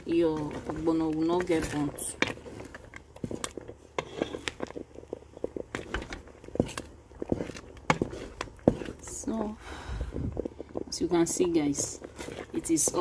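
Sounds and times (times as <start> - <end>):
spoon stirring thick soup: 0.0 - 9.7, 10.3 - 13.0.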